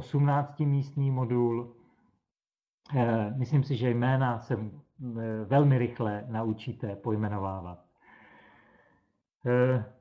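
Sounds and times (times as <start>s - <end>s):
man speaking: 0.0s - 1.8s, 2.9s - 7.8s, 9.4s - 10.0s.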